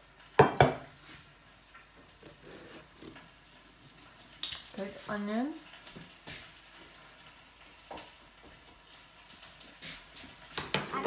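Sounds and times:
onions sizzling in a pan: 0:00.0 - 0:11.0.

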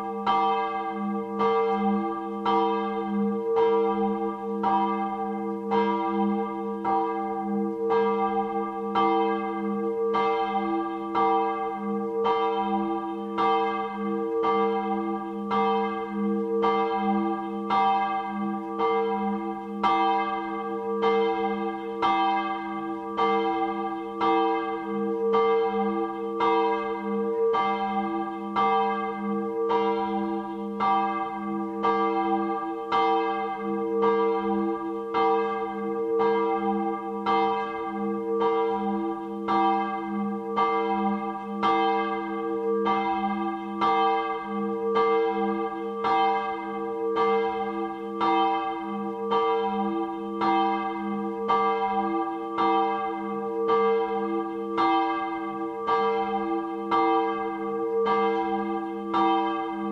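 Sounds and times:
large church bell ringing: 0:00.0 - 0:59.9.

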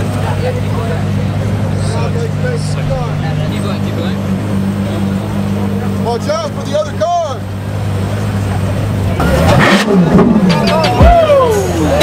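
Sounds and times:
car engine idling and revving: 0:00.0 - 0:12.0.

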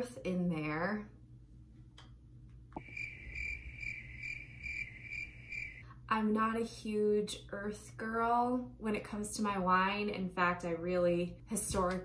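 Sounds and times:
crickets chirping: 0:02.8 - 0:05.8.

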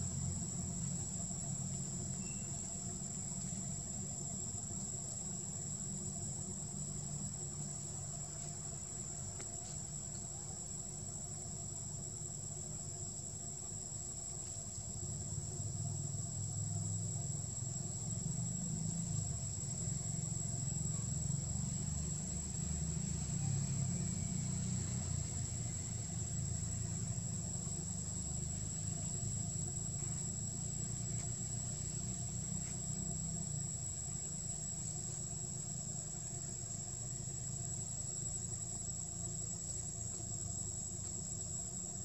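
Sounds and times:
insects droning: 0:00.0 - 0:42.0
low uneven rumble: 0:00.0 - 0:42.0.

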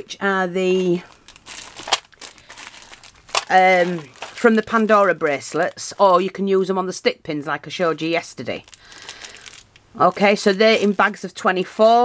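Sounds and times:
plastic bag of beads crinkling: 0:00.6 - 0:06.4, 0:07.8 - 0:12.0.

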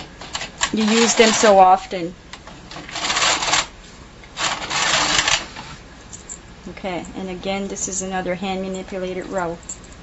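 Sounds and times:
knitting machine carriage rattling: 0:00.3 - 0:01.7, 0:02.7 - 0:03.7, 0:04.4 - 0:05.4.

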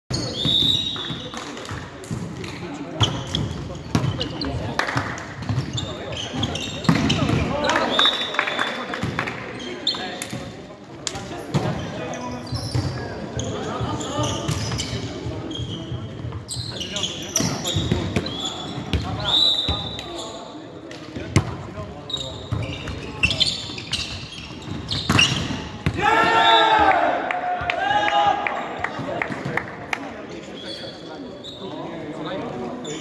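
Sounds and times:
shoes squeaking on wooden court: 0:00.1 - 0:01.3, 0:02.1 - 0:07.8, 0:09.5 - 0:10.5, 0:11.5 - 0:25.9, 0:30.4 - 0:33.0.

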